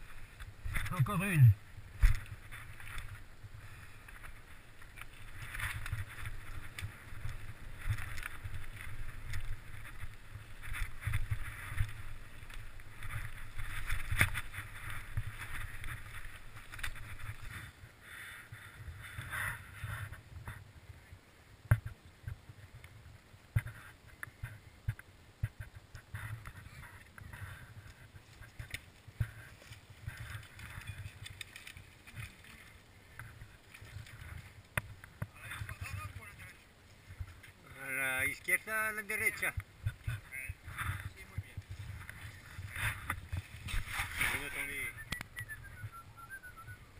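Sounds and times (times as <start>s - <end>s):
bike rattling over stones: 1.8s - 17.8s, 26.2s - 45.5s.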